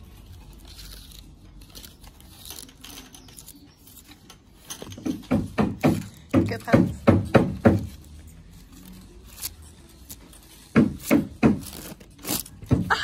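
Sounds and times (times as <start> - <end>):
rustling and handling noise: 0.0 - 13.0.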